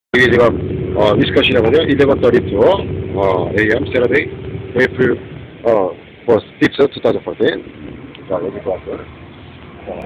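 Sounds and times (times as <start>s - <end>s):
man talking: 0.2s - 9.1s
vehicle rumble inside cabin: 0.2s - 10.0s.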